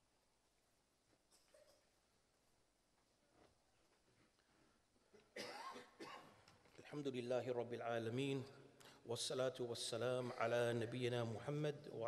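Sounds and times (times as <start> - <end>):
person coughing: 5.2 - 6.4, 10.2 - 10.6.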